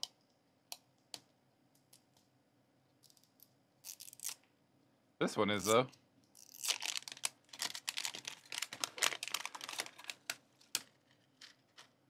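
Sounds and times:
plastic wrap crackling: 6.4 - 11.9
fingers clicking on plastic wrap: 6.5 - 11.9.

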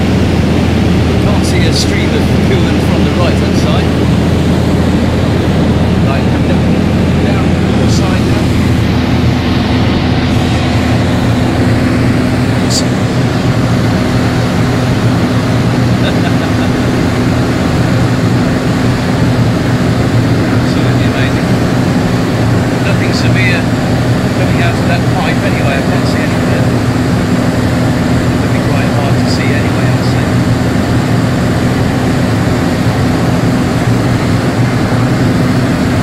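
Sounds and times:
rush of airflow: 0.0 - 24.4
propeller aircraft engines droning: 0.0 - 36.0.

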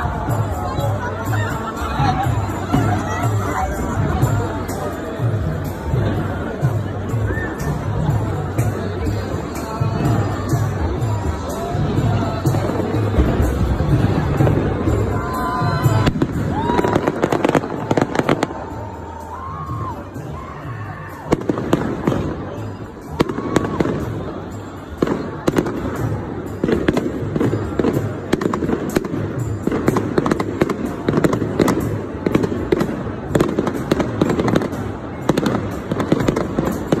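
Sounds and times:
crowd voices: 0.0 - 37.0
fireworks bangs and crackles: 0.0 - 37.0.

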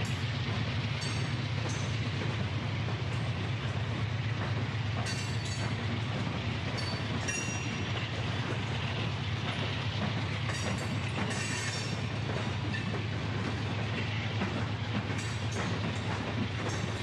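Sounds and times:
diesel locomotive engine drone: 0.0 - 17.0
train wheels rolling on rails: 0.0 - 17.0.

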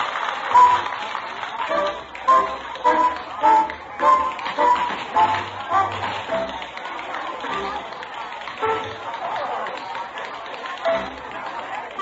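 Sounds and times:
upbeat dance-band music: 0.5 - 1.1, 1.7 - 6.8.

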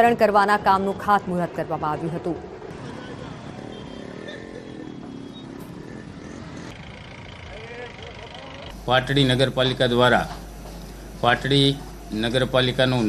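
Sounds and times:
motorcycles running slowly: 2.6 - 13.0.

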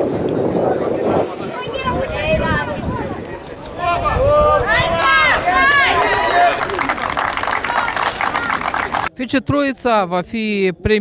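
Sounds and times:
small crowd clapping: 5.6 - 9.1.

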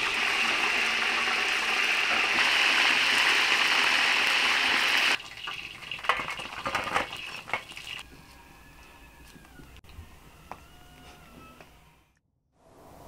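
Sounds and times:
chicken deep-frying in oil: 0.0 - 8.0.

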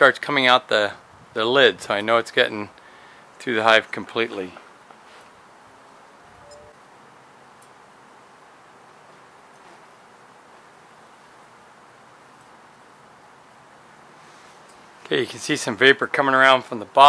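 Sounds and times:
faint outdoor hiss: 0.0 - 17.0
faint chirp: 6.0 - 6.8.

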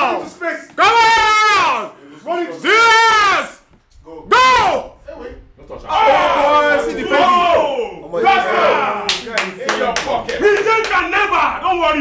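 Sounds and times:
men's voices: 0.0 - 12.0
sharp hand claps: 9.1 - 11.0.

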